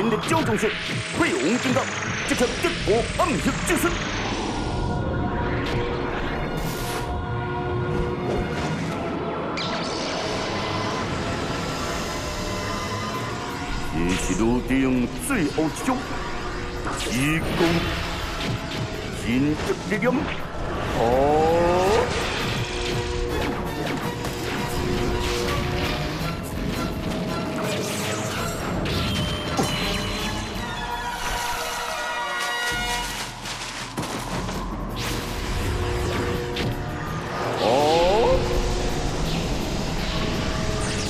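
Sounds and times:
dramatic background music: 0.0s - 41.0s.

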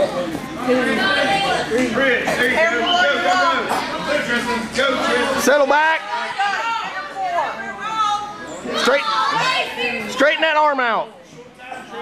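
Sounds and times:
people shouting and chattering: 0.0s - 12.0s.

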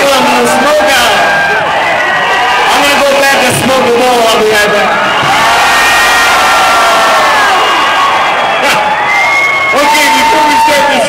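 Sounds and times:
crowd cheering and whooping: 0.0s - 11.0s.

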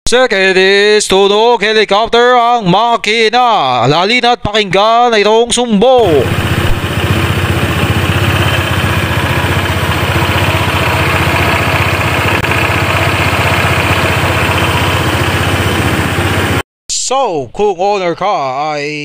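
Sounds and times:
scooter engine rhythmic chopping: 6.0s - 16.6s.

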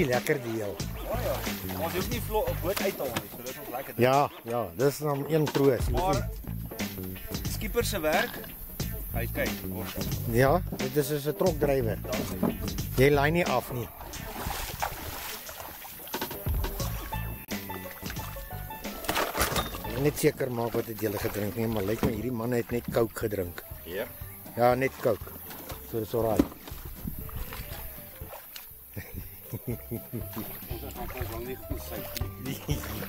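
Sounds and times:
people chatting: 0.0s - 6.3s, 7.5s - 8.4s, 9.1s - 14.4s, 19.8s - 25.2s, 25.9s - 26.4s, 30.7s - 33.0s
wind on microphone: 13.9s - 15.3s, 26.7s - 28.0s
knocks and rustles of net: 14.1s - 17.1s, 18.8s - 20.0s
people laughing: 28.9s - 31.0s, 32.3s - 33.0s.

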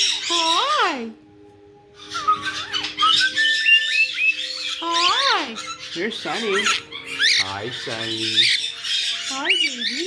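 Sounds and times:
parrots whistling and chirping: 0.0s - 1.0s, 1.8s - 10.0s.

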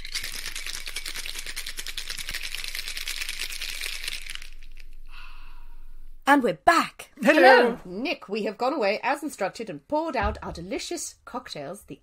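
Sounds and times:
ice rattling in cocktail shaker: 0.0s - 5.0s.

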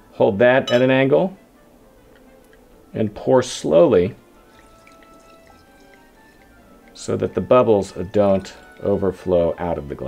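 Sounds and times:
soft background music: 0.0s - 10.0s
champagne pouring and fizzing: 2.4s - 10.0s.

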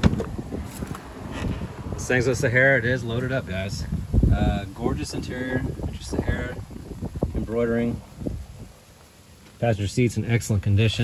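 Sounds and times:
wind noise on microphone: 0.0s - 8.9s.

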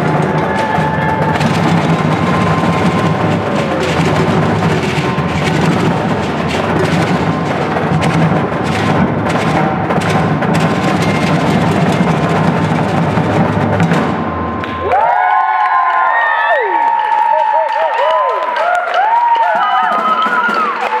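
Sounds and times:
audience cheering and whooping: 0.0s - 6.3s, 14.4s - 21.0s
drum ensemble playing: 0.0s - 15.5s, 19.4s - 21.0s
audience clapping: 14.6s - 21.0s.

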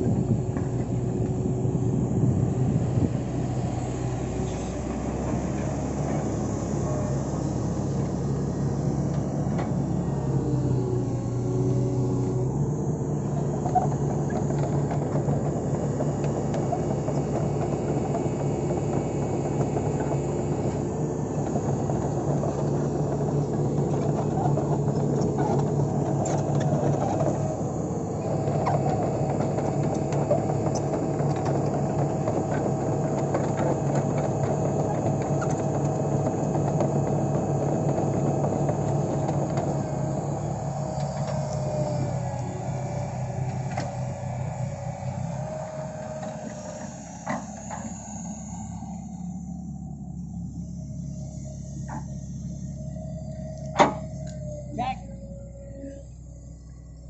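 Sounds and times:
excavator diesel engine running: 0.0s - 57.0s.

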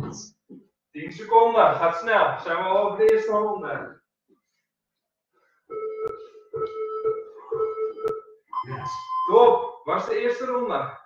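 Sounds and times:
interval timer electronic tones: 5.7s - 9.8s.

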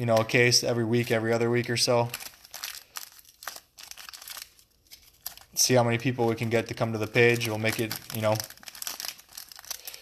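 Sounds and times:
card pack wrapper crinkling: 0.0s - 10.0s.

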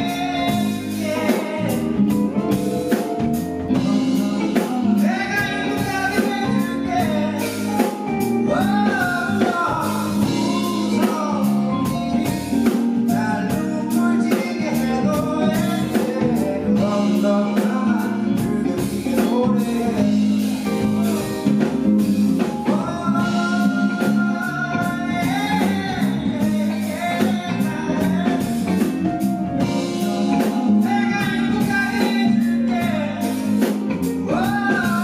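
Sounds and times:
bass: 0.0s - 35.0s
drum kit beat: 0.0s - 35.0s
guitar: 0.0s - 35.0s
man singing into a microphone: 0.0s - 35.0s.

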